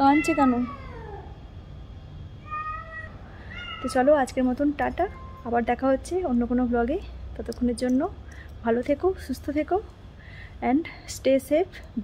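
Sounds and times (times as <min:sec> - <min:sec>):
high-pitched animal call: 0:02.4 - 0:04.2.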